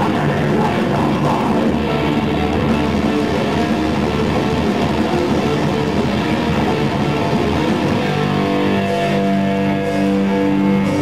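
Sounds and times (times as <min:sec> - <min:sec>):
metalcore band playing live: 0:00.0 - 0:11.0
ringing guitar chord: 0:01.7 - 0:11.0.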